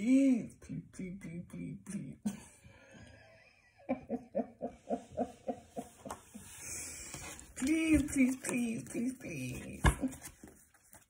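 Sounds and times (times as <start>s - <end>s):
woman laughing: 3.2s - 6.6s.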